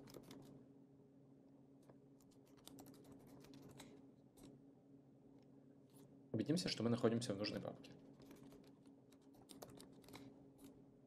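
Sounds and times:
typing on computer keyboard: 0.0 - 0.5, 2.2 - 3.9, 8.2 - 10.3
faint steady hum: 0.0 - 11.0.

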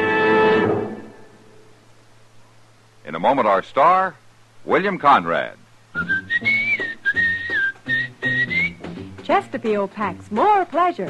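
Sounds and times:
whistled melody: 6.0 - 9.1
light instrumental accompaniment: 6.0 - 11.0.

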